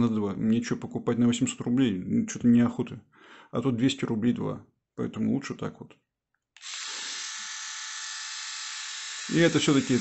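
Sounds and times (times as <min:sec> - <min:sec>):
electric shaver whirring: 0:06.6 - 0:10.0.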